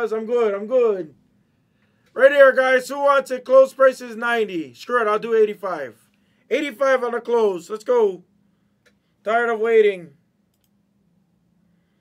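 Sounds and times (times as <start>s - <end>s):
faint quick clicks: 10.5s - 10.8s.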